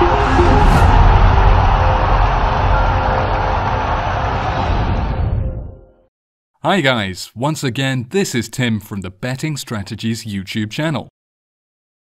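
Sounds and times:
dense rushing rumble: 0:00.0 - 0:05.8.

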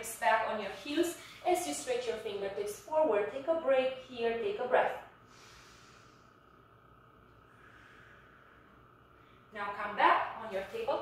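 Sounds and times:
faint breath: 0:05.2 - 0:06.7, 0:07.4 - 0:09.5.

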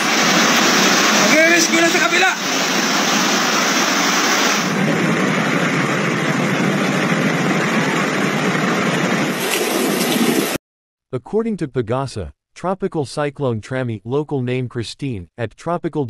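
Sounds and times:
heavy rain and floodwater rushing: 0:00.0 - 0:10.6
vehicle engine running: 0:04.7 - 0:09.4.

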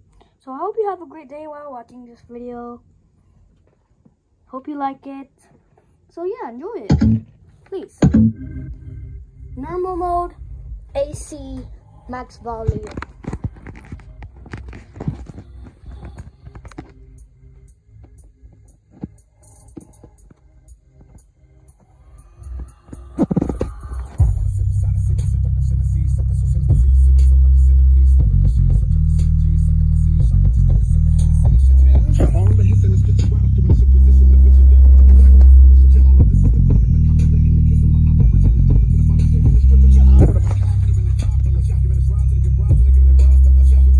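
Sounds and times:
deep bass notes from speaker: 0:06.9 - 0:07.3, 0:08.0 - 0:11.3, 0:23.5 - 0:43.9
short bass hits: 0:06.9 - 0:07.3, 0:08.0 - 0:08.9, 0:30.2 - 0:37.3, 0:38.2 - 0:43.2
steady low rumble: 0:08.0 - 0:18.5, 0:21.9 - 0:43.9.

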